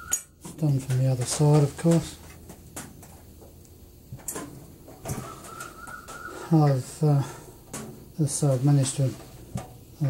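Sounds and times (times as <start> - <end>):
metal grille clicks and knocks: 0.4 - 6.2, 7.6 - 10.0.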